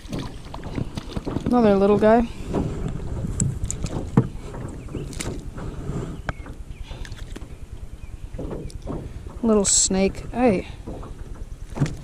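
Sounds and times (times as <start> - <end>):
water slapping against boat: 0.0 - 12.0
wind buffeting microphone: 0.0 - 12.0.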